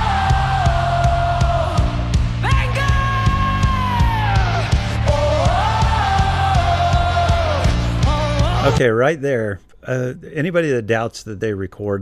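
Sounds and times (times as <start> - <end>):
bass guitar: 0.0 - 8.8.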